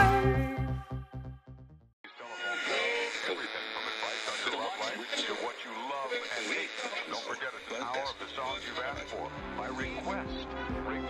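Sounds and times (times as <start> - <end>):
music track: 0.0 - 1.4, 8.5 - 11.0
radio-filtered voice: 2.1 - 11.0.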